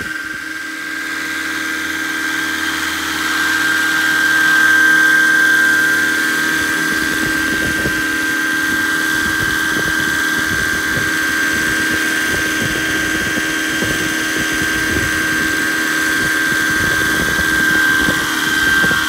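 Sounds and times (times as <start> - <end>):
electric motor high whine: 0.0 - 19.0
helicopter rotors humming: 0.0 - 19.0
wind buffeting microphone: 6.3 - 19.0.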